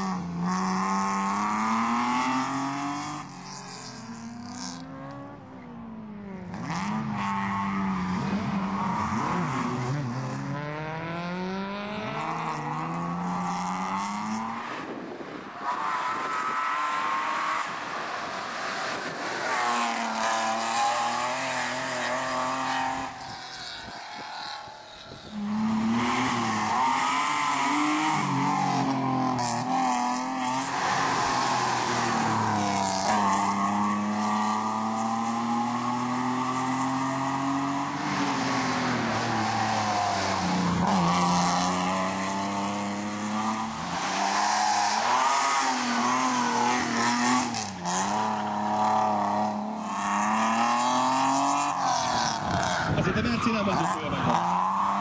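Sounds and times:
rally car engine revving hard: 0.0 - 5.4, 6.4 - 14.9, 18.6 - 55.0.

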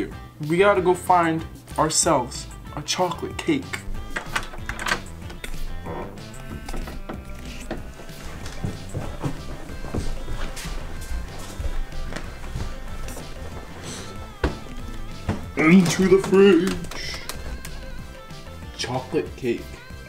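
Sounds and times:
background music with steady beat: 0.0 - 20.0
door opening thunk: 4.0 - 8.7, 14.3 - 17.9.

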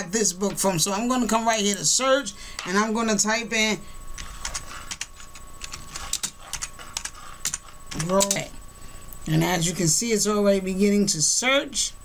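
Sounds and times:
computer keyboard key clicks: 4.2 - 8.5.

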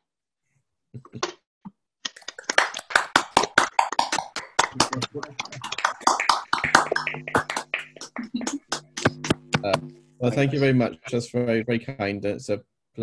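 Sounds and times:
people clapping: 2.0 - 9.8
voices: 9.6 - 12.5.

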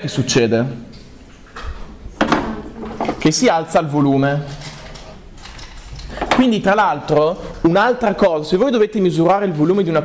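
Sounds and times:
person's voice: 6.1 - 10.0.

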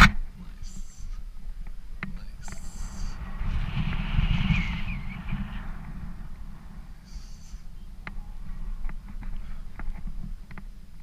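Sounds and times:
wind buffeting microphone: 1.3 - 11.0.

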